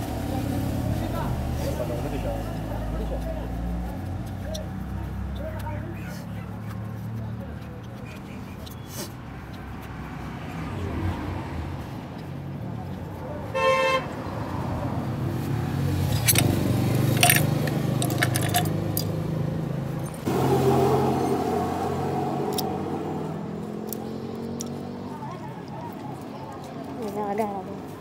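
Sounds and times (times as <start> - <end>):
road traffic engines running: 0.0 - 28.0
metal parts clinking: 16.1 - 19.1, 20.0 - 20.3.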